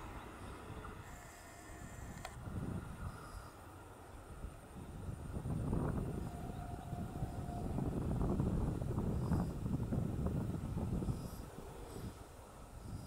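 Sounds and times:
faint steady whine: 0.0 - 13.0
train rumble: 0.0 - 13.0.

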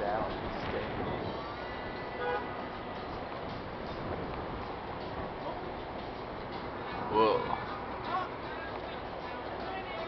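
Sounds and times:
outdoor background rush: 0.0 - 10.0.

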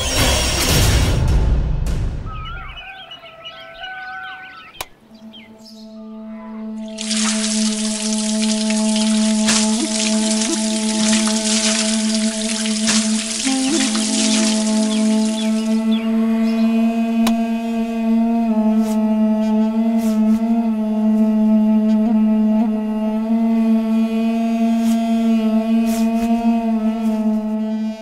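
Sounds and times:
low musical drone: 5.0 - 28.0
water running from tap: 7.0 - 15.4.

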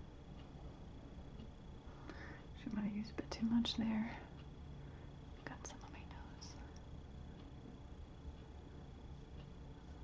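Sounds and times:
soft breaths: 1.7 - 2.6, 3.8 - 7.9.

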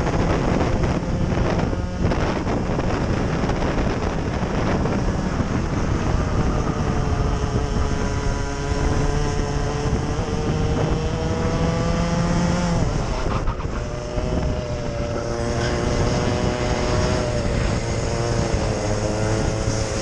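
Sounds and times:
racing kart engine: 0.0 - 20.0.

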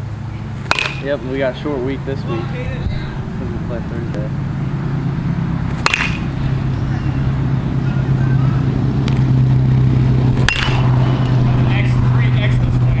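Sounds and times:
steady low hum: 0.0 - 13.0
sharp crack: 0.6 - 1.3, 5.7 - 6.6, 10.4 - 11.4.

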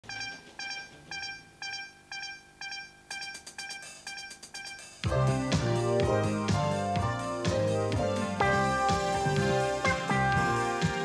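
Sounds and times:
short electronic synth beeps: 0.0 - 5.1.

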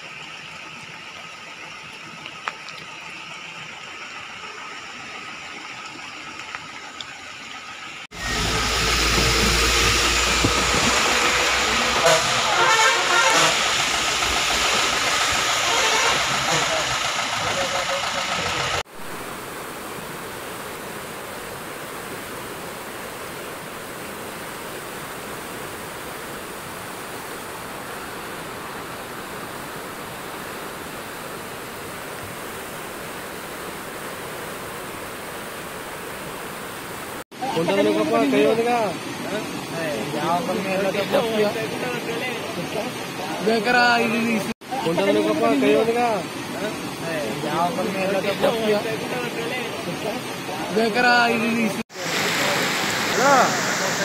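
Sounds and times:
floodwater rushing over causeway: 0.0 - 54.0.

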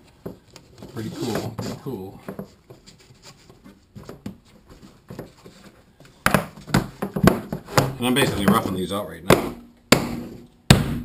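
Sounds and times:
loud sharp knocks: 9.3 - 11.0.

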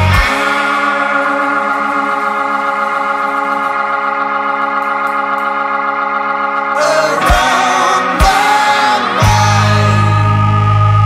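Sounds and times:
organ chord: 0.0 - 11.0.

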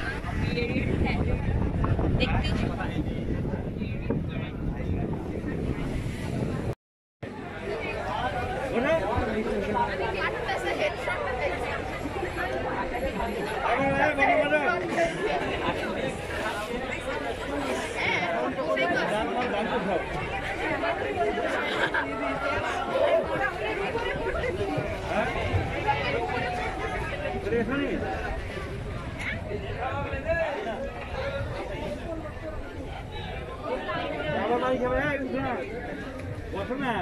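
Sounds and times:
overlapping chatter: 0.0 - 37.0.

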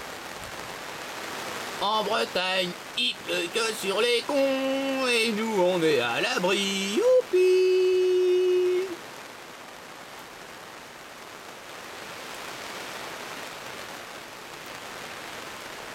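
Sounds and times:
rain falling: 0.0 - 15.9
person singing a held note: 6.5 - 9.0.

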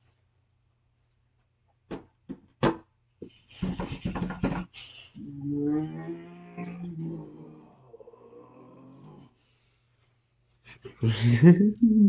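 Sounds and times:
man laughing: 11.0 - 12.0.

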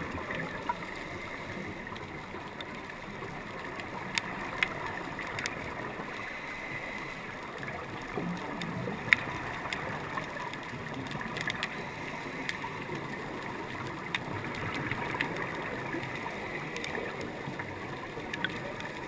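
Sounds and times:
sharp underwater clicks: 0.0 - 19.0
underwater hiss: 0.2 - 2.4, 5.3 - 7.8, 11.5 - 13.4, 14.0 - 17.6.

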